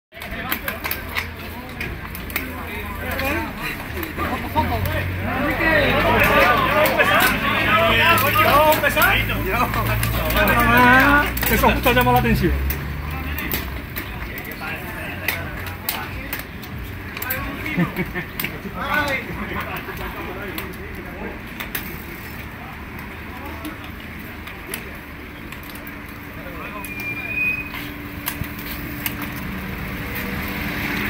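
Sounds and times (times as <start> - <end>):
chatter of people: 0.1 - 31.0
murmur of voices: 0.1 - 31.0
mountain bike clicks: 0.2 - 31.0.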